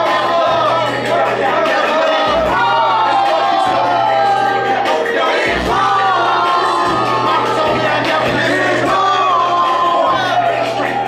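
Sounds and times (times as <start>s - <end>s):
crowd noise: 0.0s - 11.0s
hip-hop beat with vocal: 0.0s - 11.0s.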